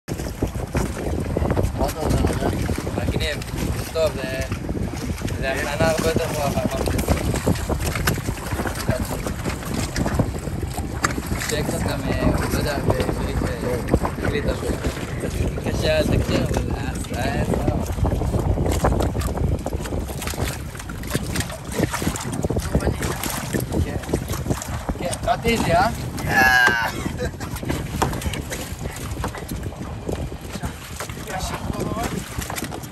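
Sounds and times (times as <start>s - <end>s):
knocks and taps from boat rigging: 0.1s - 32.9s
wind buffeting microphone: 0.1s - 32.9s.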